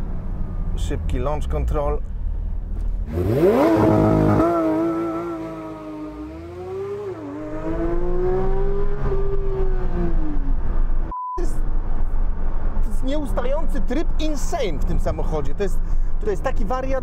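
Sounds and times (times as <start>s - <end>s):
car engine revving under acceleration: 2.4s - 11.1s.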